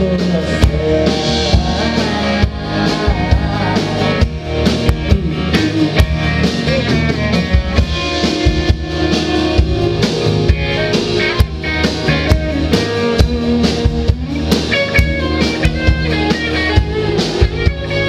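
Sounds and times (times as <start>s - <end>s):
drum kit steady beat: 0.0s - 18.0s
electric guitar: 0.0s - 18.0s.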